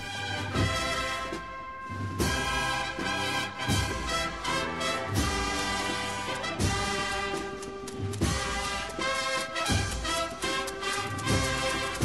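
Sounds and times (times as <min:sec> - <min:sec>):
slow brass music: 0:00.0 - 0:12.0
drum strikes: 0:00.5 - 0:12.0.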